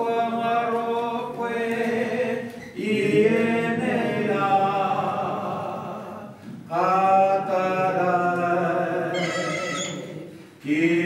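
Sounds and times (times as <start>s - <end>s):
chant-like held note: 9.1s - 10.3s.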